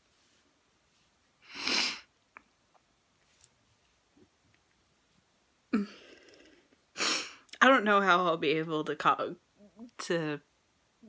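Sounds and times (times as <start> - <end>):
woman's sharp breath through nose: 1.5 - 2.1.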